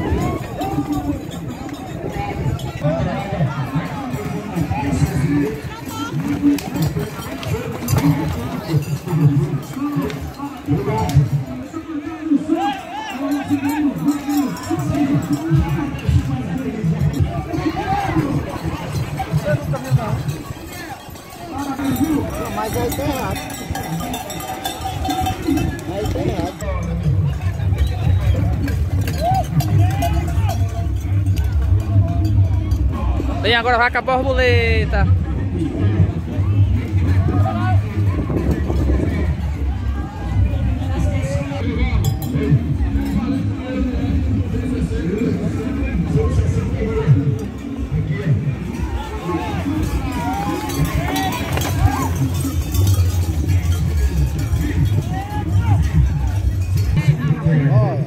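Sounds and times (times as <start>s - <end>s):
crowd voices: 0.0s - 58.0s
horses galloping: 0.0s - 58.0s
men shouting: 48.6s - 53.2s.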